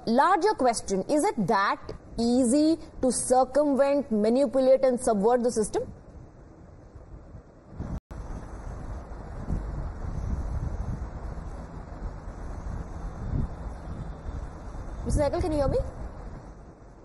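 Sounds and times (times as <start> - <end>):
rumbling wind-like line noise: 0.0 - 17.0.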